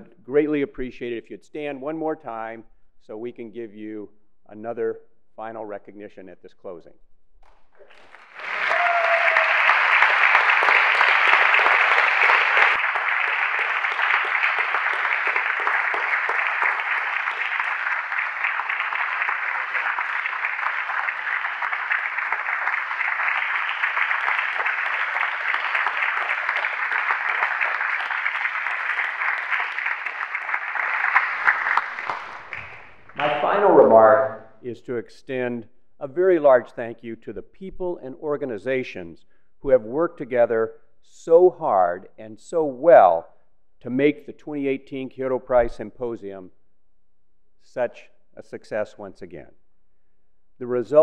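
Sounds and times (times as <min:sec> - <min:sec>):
audience applauding: 0:07.8 - 0:34.4.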